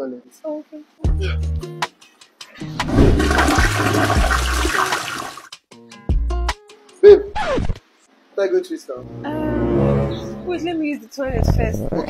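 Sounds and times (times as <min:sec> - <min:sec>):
toilet flushing: 0:02.8 - 0:05.5.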